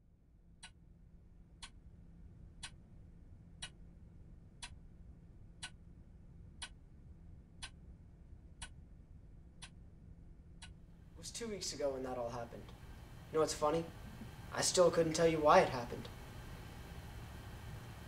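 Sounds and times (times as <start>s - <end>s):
faint low hum: 0.0s - 18.0s.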